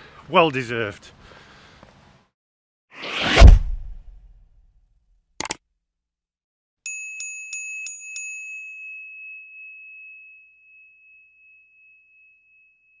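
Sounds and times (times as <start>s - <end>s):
small bell ringing: 6.8s - 13.0s.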